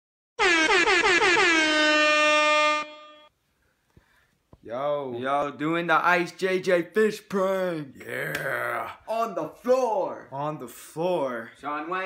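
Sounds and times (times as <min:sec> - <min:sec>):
air horn blasts: 0:00.4 - 0:03.3.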